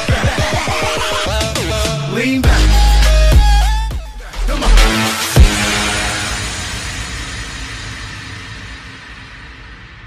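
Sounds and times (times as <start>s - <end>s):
trailer soundtrack noisy wash: 3.6s - 10.0s.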